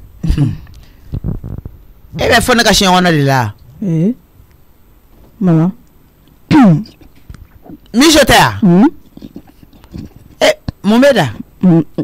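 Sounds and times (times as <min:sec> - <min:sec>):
person speaking: 0:02.1 - 0:04.3, 0:05.3 - 0:05.9, 0:06.5 - 0:12.0.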